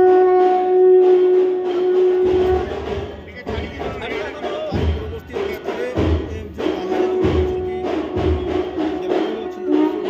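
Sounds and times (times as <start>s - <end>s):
conch shell blown: 0.0s - 3.2s, 6.8s - 10.0s.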